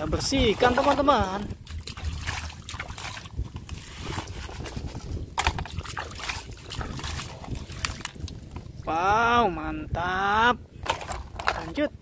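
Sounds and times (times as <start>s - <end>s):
water sloshing and splashing: 0.0s - 8.9s, 10.8s - 11.8s.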